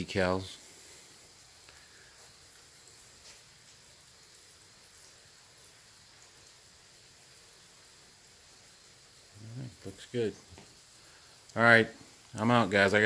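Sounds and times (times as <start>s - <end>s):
faint steady hiss: 0.0s - 13.0s.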